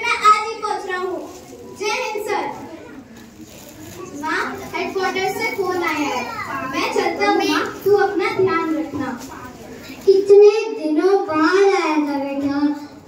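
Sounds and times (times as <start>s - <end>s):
child speaking into a microphone: 0.0s - 13.0s.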